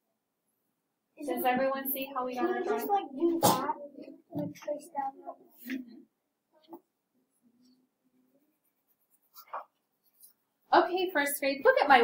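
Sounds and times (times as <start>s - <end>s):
pencil scratching on paper: 8.5s - 10.4s.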